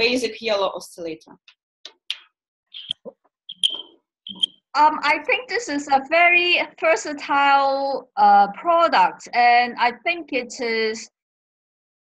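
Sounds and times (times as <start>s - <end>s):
broken video call audio: 0.0s - 11.2s
high chirps: 2.1s - 4.6s.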